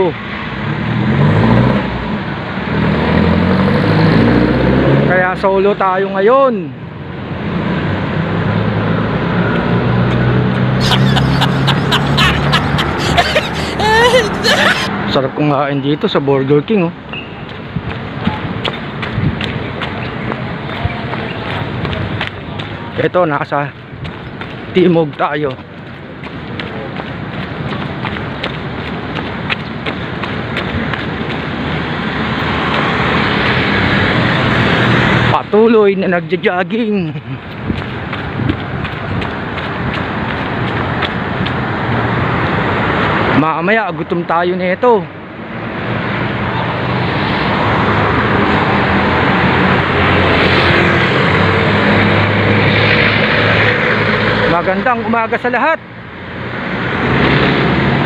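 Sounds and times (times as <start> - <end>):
traffic rushing: 0.0 - 58.0
wind: 0.0 - 58.0
vehicle engine hum: 6.8 - 15.4, 16.3 - 43.4
footsteps on concrete: 17.1 - 33.6, 36.8 - 41.8.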